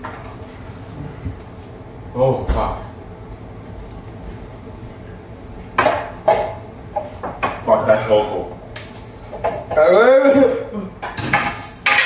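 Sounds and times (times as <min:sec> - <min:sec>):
bowls and cutlery clinking: 0:11.0 - 0:12.0.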